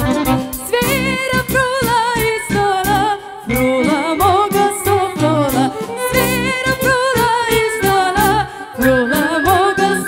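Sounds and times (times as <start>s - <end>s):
live band music: 0.0s - 10.0s.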